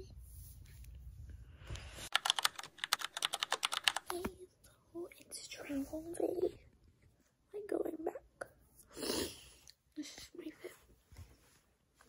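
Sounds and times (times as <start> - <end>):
fast run of sharp clicks: 2.1 - 4.2
person speaking: 2.2 - 6.7.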